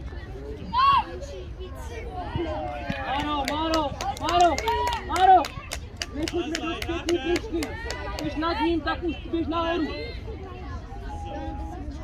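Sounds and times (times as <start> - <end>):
voices calling and shouting: 0.0 - 12.0.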